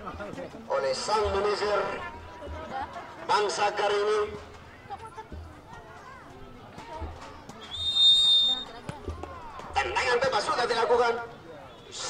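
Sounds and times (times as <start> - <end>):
referee's whistle blast: 7.6 - 8.7.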